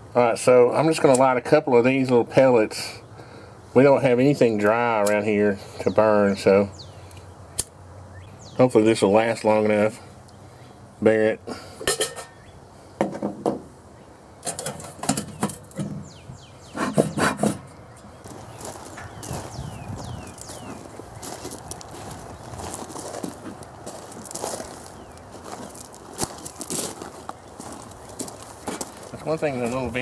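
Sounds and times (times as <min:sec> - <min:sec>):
birds chirping: 0:02.6 - 0:13.0, 0:13.8 - 0:30.0
metal clanks and clinks: 0:11.8 - 0:12.4, 0:14.4 - 0:16.0
bellows puffing: 0:16.7 - 0:17.7.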